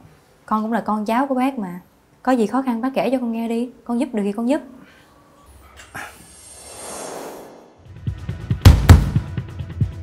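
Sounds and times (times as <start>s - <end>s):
rising whoosh: 6.0s - 8.2s.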